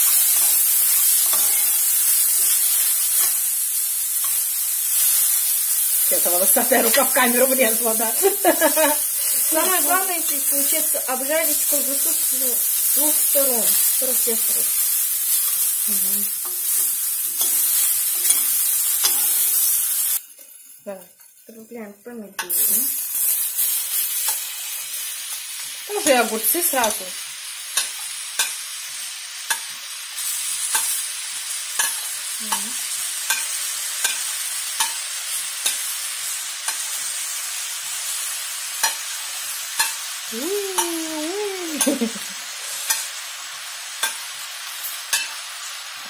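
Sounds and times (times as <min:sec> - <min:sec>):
food sizzling in hot oil: 0:00.0 - 0:46.0.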